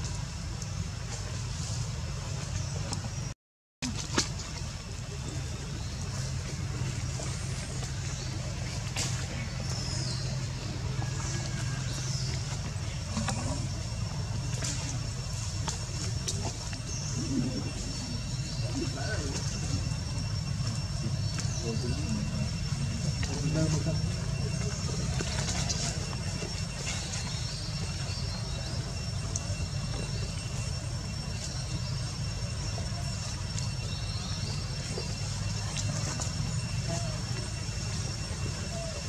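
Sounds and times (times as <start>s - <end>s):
steady low rumble: 0.0s - 39.0s.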